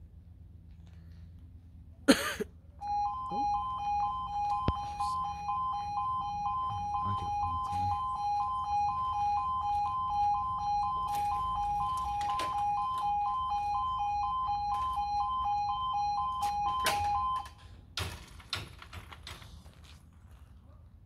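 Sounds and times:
two-tone warning alarm warble: 0:02.8 - 0:17.6.

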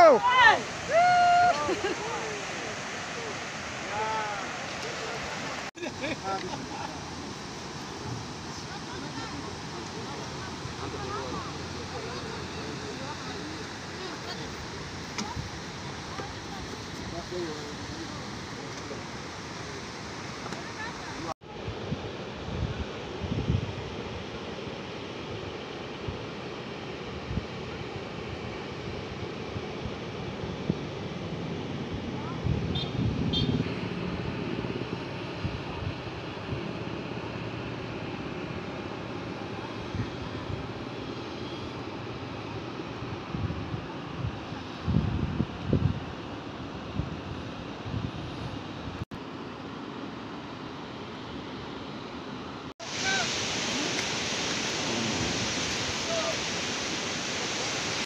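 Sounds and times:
wind buffeting microphone: 0:29.6 - 0:36.8, 0:43.0 - 0:46.2
surf breaking on beach: 0:52.8 - 0:58.0.

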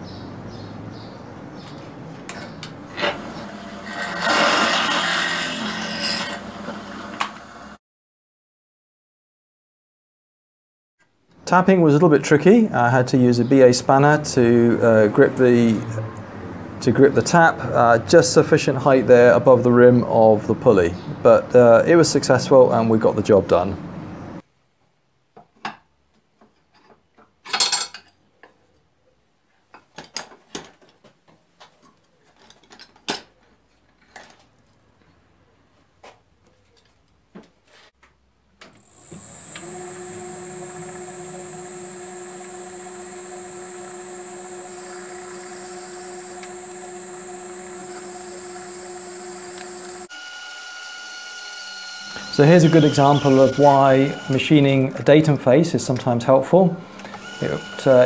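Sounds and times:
metal lathe whining: 0:38.8 - 0:54.6, 0:57.0 - 0:58.0.

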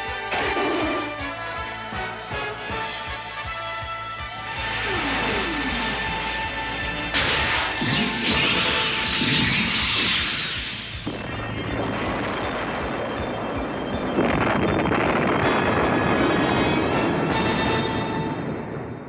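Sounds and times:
dramatic background music: 0:00.0 - 0:19.0
loud explosion: 0:07.1 - 0:19.0.

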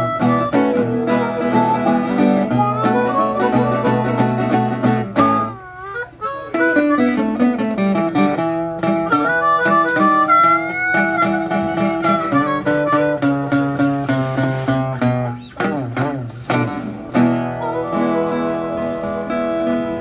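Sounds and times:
harmonica bending notes: 0:00.0 - 0:20.0
strummed acoustic guitar: 0:00.0 - 0:20.0.

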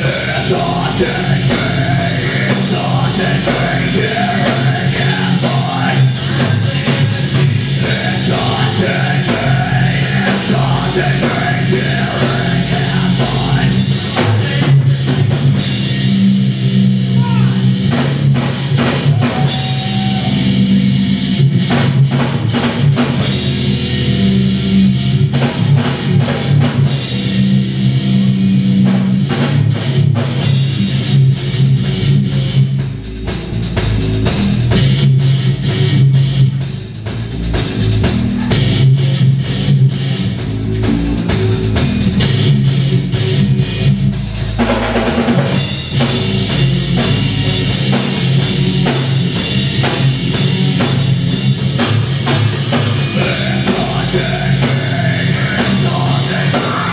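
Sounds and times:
bass guitar: 0:00.0 - 0:56.9
drum kit: 0:00.0 - 0:56.9
electric guitars: 0:00.0 - 0:56.9.

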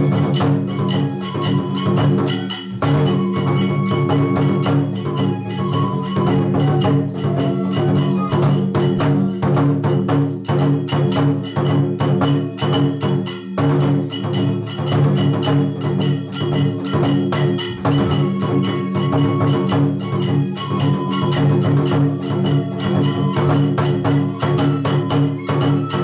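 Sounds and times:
fast drum strokes: 0:00.0 - 0:26.0
hand cymbals: 0:00.0 - 0:26.0.

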